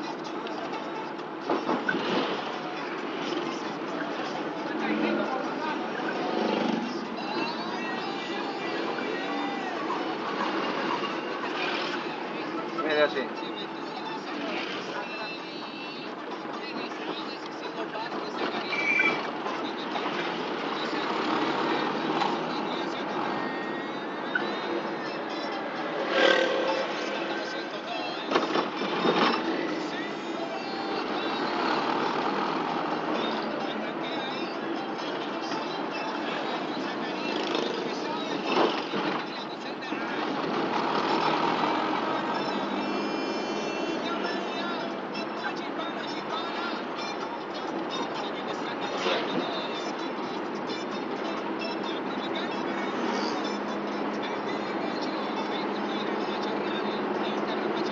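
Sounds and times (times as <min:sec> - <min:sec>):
car road and engine noise: 0:00.0 - 0:57.9.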